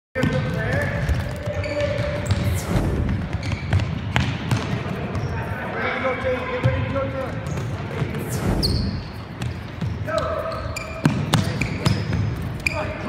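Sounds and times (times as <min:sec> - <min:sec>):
balls thudding on gym floor: 0:00.2 - 0:05.3.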